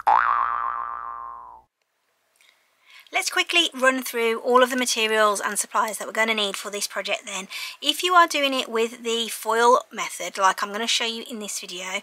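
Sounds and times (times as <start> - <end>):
cartoon boing sound effect: 0.0 - 1.7.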